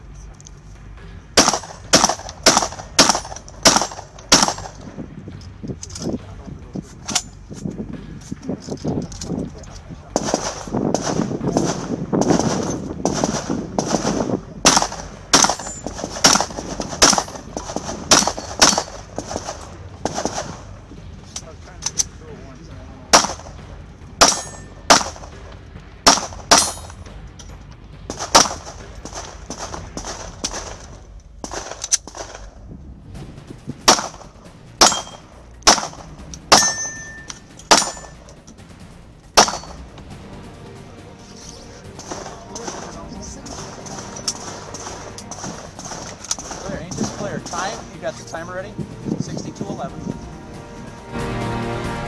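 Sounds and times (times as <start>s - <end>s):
gunshots: 1.4s - 4.9s, 10.1s - 20.7s, 23.1s - 23.6s, 24.2s - 27.0s, 28.1s - 32.5s, 33.8s - 38.2s, 39.4s - 39.8s, 42.0s - 48.0s
steel target ringing: 24.2s - 25.2s, 26.1s - 27.0s, 34.8s - 38.3s, 39.4s - 39.8s.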